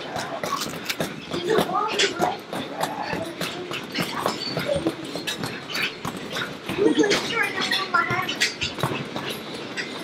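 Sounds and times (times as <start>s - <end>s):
indistinct voices: 0.0s - 9.9s.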